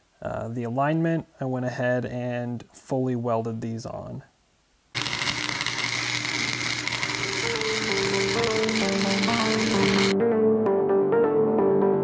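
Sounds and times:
arc welding crackling hiss: 4.9 - 10.2
electronic background music: 5.0 - 11.0.

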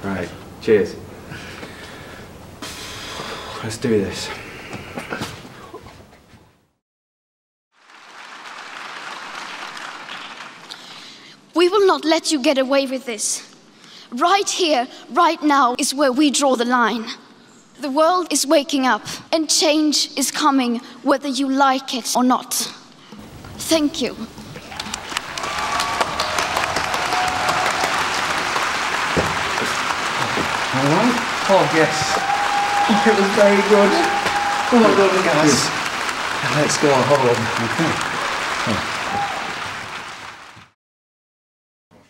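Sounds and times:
crowd applauding: 7.8 - 11.1, 24.3 - 40.8.

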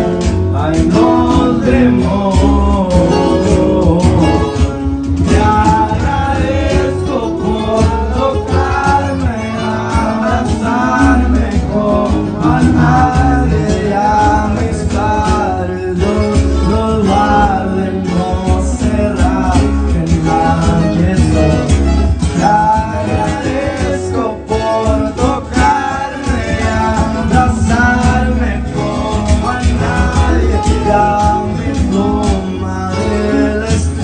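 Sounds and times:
guitar-led music with bass: 0.0 - 34.0
man singing into microphone: 0.0 - 34.0.

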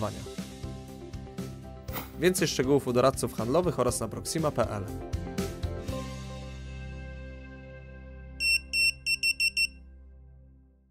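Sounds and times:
quiet background music: 0.0 - 10.7
high electronic beeps: 8.4 - 9.7.

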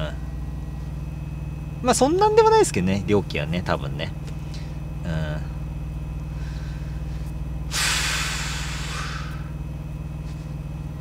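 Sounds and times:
truck idling hum: 0.0 - 11.0
compressed air hiss: 7.7 - 9.5.

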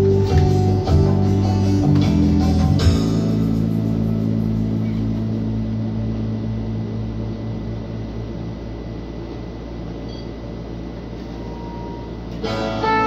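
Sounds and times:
bass guitar note ringing: 0.0 - 8.8, 11.6 - 13.0.

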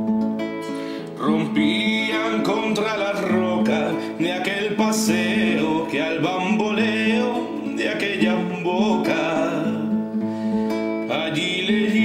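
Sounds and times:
strummed acoustic guitar: 0.0 - 12.0
person singing long notes: 1.0 - 12.0.

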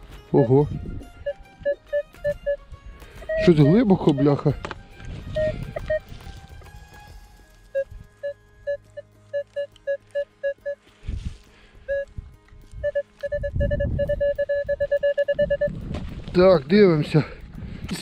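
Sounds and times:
metal detector beeping: 0.3 - 2.6, 3.2 - 4.7, 5.3 - 6.1, 7.7 - 10.8, 11.9 - 12.1, 12.8 - 15.8.

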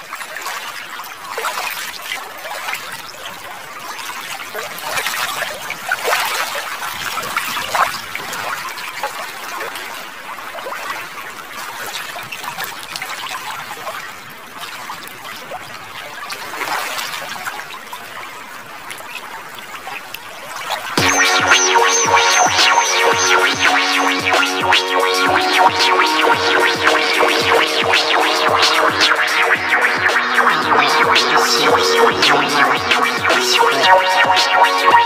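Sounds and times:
electronic music with steady beat: 21.0 - 35.0.

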